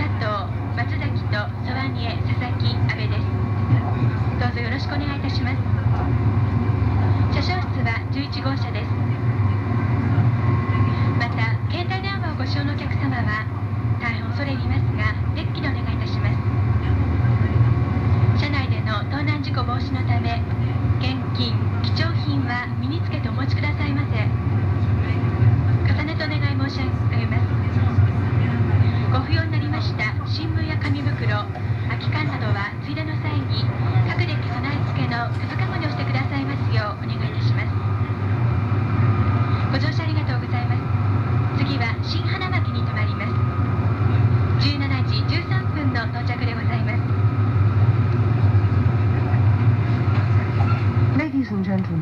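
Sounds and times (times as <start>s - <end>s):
train interior low rumble: 0.0s - 52.0s.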